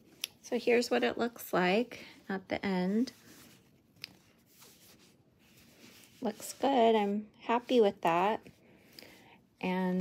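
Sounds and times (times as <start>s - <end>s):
fabric rustling: 0.4s - 8.6s.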